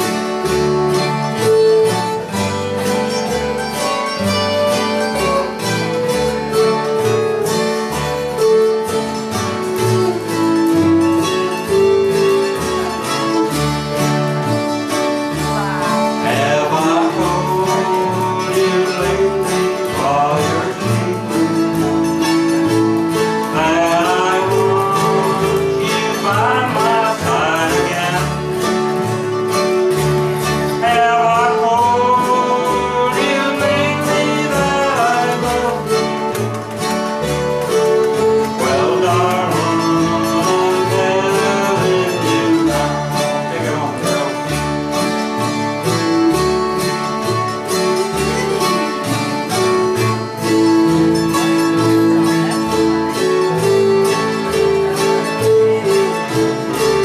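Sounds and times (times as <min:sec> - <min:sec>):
strummed acoustic guitar: 0:00.0 - 0:57.0.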